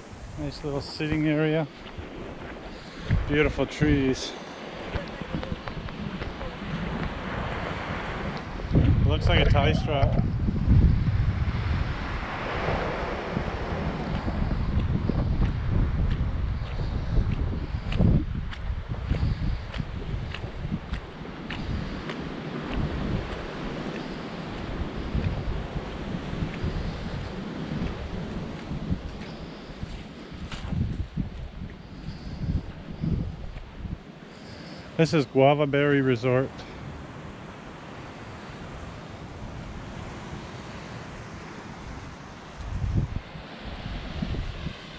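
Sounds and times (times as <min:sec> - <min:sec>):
surf-like hiss: 0:00.0 - 0:10.0, 0:34.1 - 0:44.9
wind buffeting microphone: 0:00.0 - 0:35.2, 0:36.6 - 0:44.9.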